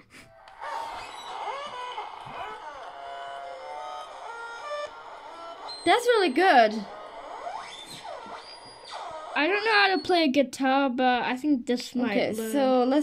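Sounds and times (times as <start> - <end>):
held notes through small speaker: 0.5 - 10.0.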